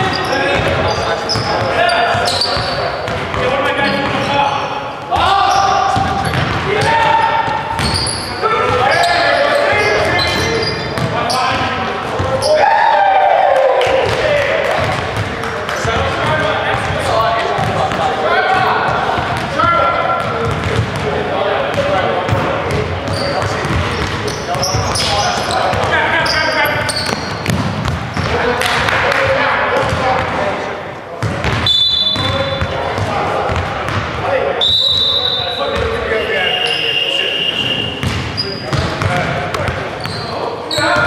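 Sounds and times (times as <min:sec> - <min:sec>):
players calling out: 0:00.0 - 0:41.0
ball bouncing on gym floor: 0:05.9 - 0:08.0, 0:13.8 - 0:18.1, 0:19.1 - 0:21.1, 0:21.7 - 0:26.0, 0:26.9 - 0:29.0, 0:31.2 - 0:34.2, 0:38.0 - 0:40.2.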